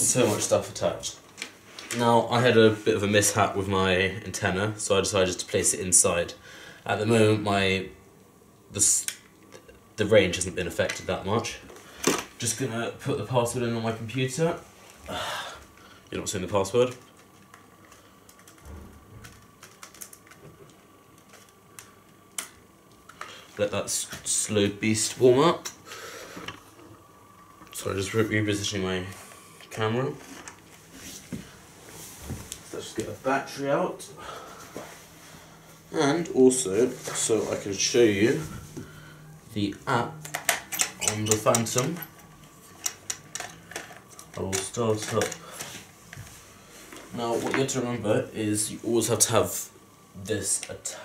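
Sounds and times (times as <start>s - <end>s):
laptop keyboard typing: 19.2s - 20.4s.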